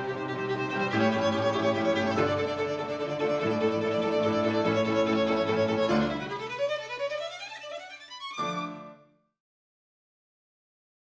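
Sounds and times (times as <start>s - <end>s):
violin cello and piano trio: 0.0s - 9.1s.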